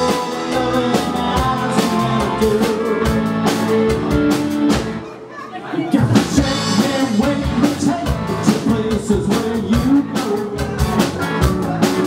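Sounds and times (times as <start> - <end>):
electric bass: 0.0 - 5.0, 6.1 - 12.0
drum kit beat: 0.0 - 5.1, 6.0 - 12.0
electric guitars: 0.0 - 5.2, 5.9 - 12.0.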